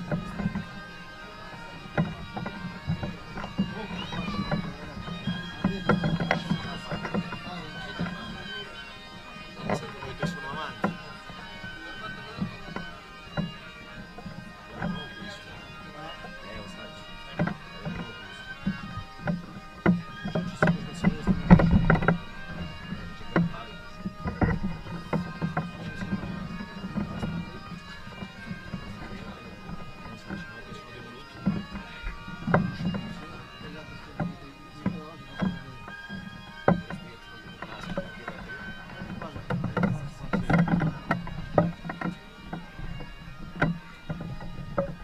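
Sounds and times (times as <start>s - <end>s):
faint drone-like music: 0.0s - 45.0s
wooden poles knocking: 1.8s - 8.4s, 17.4s - 27.6s, 34.1s - 45.0s.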